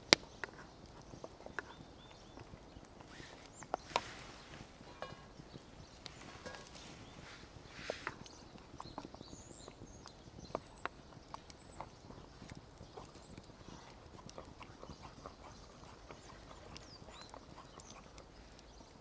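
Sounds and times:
campfire crackling: 0.0 - 19.0
utensil stirring in metal pot: 3.1 - 8.9.

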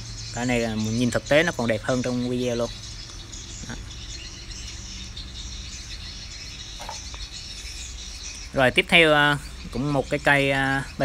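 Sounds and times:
high-pitched insect chirping: 0.0 - 10.3
low steady rumble: 0.0 - 11.0.

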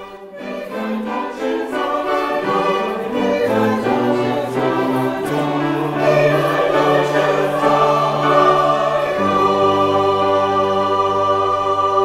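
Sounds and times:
mixed choir singing held chords: 0.0 - 12.0.

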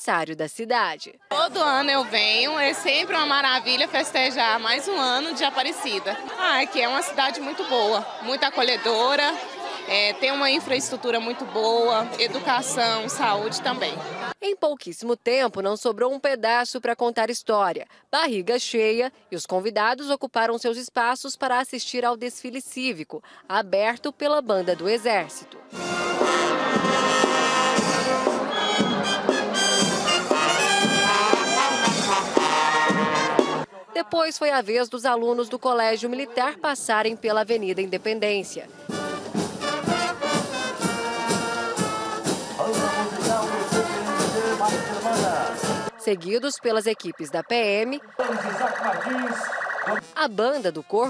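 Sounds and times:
marching band playing: 25.7 - 33.7, 38.7 - 46.0
drum strikes: 38.9 - 45.9
electronic siren warbling: 46.0 - 50.1.

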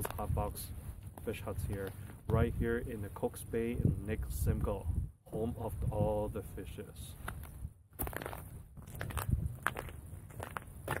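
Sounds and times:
footsteps crunching on snowy ice: 0.0 - 3.4, 6.9 - 11.0.

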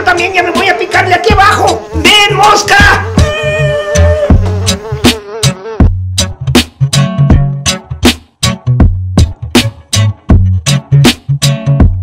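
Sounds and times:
background music with drums: 0.0 - 12.0
mosquito buzz: 0.2 - 6.0.

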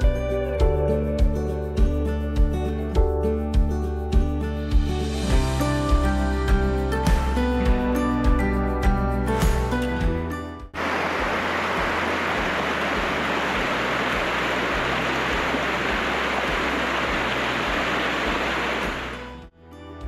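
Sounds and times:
background music: 0.0 - 20.0
creek rushing over rocks: 10.8 - 19.4.

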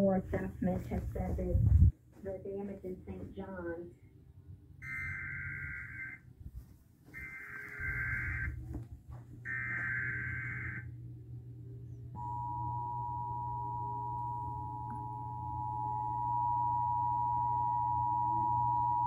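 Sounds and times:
buzzing data tones: 4.8 - 6.2, 7.2 - 8.6, 9.5 - 11.0
two-tone attention signal: 4.8 - 6.2, 7.2 - 8.6.

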